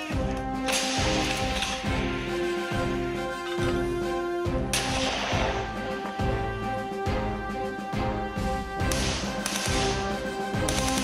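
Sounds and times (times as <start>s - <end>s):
background music with low beat: 0.0s - 11.0s
sharp crack: 0.6s - 1.9s, 4.7s - 5.8s, 8.8s - 11.0s.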